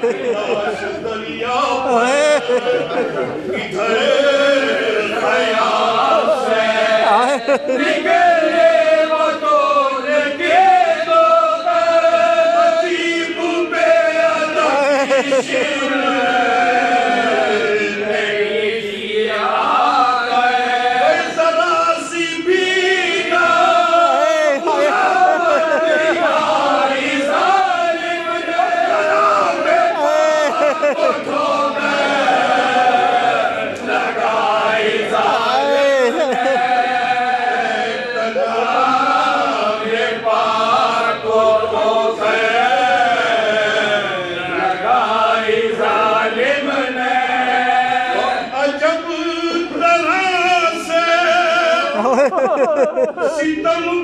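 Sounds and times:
lead reciter singing: 0.0s - 54.0s
male voices chanting: 0.0s - 54.0s.

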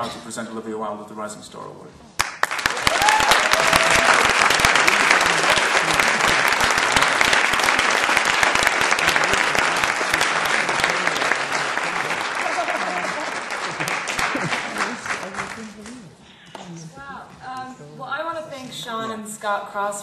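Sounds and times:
audience applauding: 2.2s - 16.2s
person whooping: 2.8s - 4.3s.

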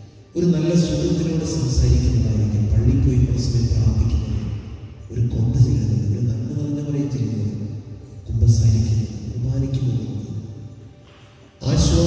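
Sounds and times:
music: 0.0s - 12.0s
man chanting: 0.4s - 7.6s, 11.6s - 12.0s.

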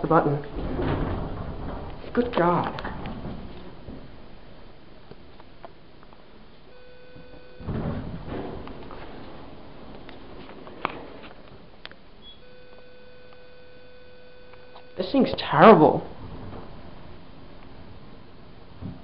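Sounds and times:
elevator rumbling thud: 0.0s - 4.4s, 7.6s - 9.9s
elevator tone: 6.7s - 9.9s, 12.2s - 15.0s.

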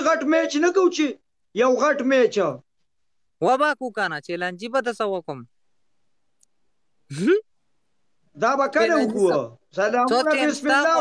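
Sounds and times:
man speaking: 8.3s - 11.0s.

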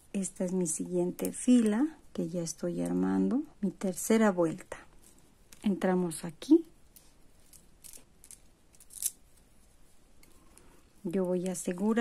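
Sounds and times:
plastic beads clicking together: 7.5s - 9.2s.

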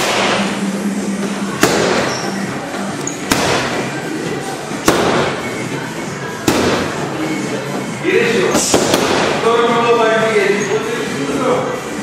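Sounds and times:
punches smacking focus mitts: 1.6s - 2.1s, 3.3s - 3.9s, 4.8s - 5.4s, 8.6s - 9.4s.

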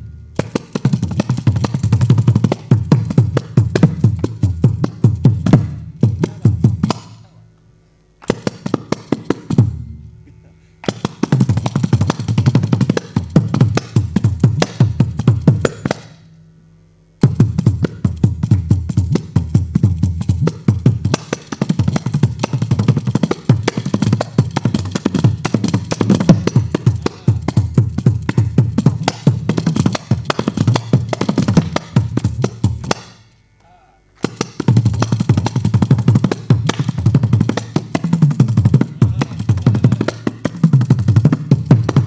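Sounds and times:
frame drum playing: 0.0s - 7.2s, 8.2s - 10.0s, 10.8s - 16.1s, 17.2s - 33.1s, 34.2s - 42.0s.

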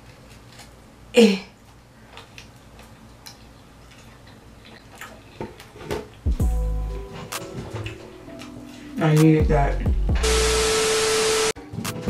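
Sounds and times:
person chewing: 1.6s - 6.2s.

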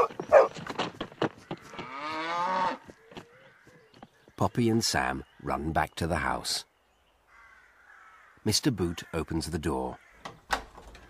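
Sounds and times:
cow mooing: 1.8s - 2.8s.

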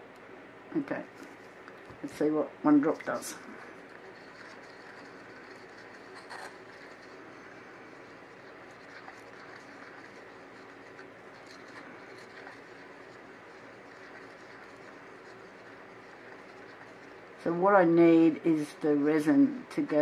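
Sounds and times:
steady background hiss: 0.0s - 20.0s
stick stirring resin in a cup: 1.2s - 18.2s.

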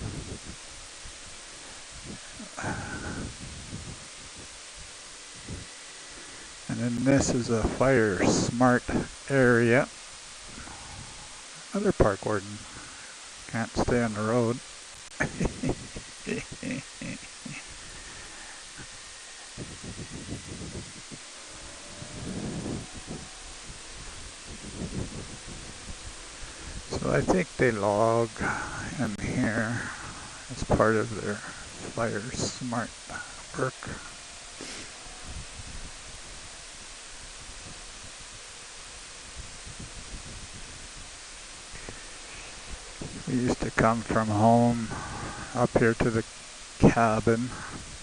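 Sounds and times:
wind buffeting microphone: 0.0s - 9.6s, 10.2s - 11.5s, 15.2s - 16.9s, 17.6s - 48.0s
motorcycle road noise: 0.0s - 48.0s.

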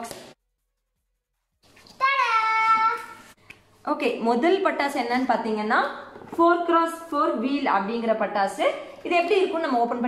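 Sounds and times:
girl exclaiming: 2.0s - 3.2s.

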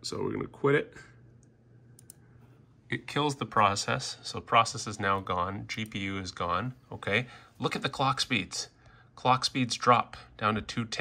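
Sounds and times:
faint computer mouse clicks: 1.4s - 2.2s.

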